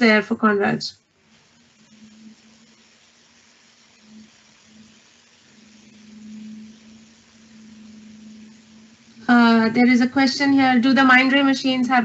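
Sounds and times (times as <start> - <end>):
light hiss: 0.0 - 12.0
low hum: 1.2 - 12.0.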